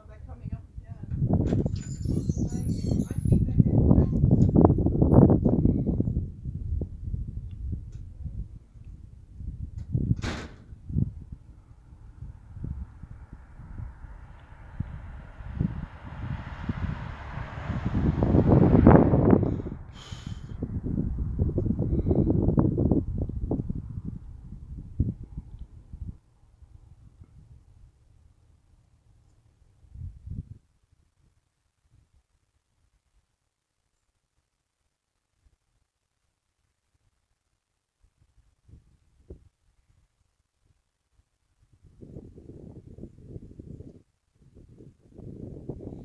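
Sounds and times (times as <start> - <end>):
wind buffeting microphone: 0.0 - 28.1, 29.8 - 30.7, 41.7 - 46.0
car tyre hiss passing: 12.0 - 20.6.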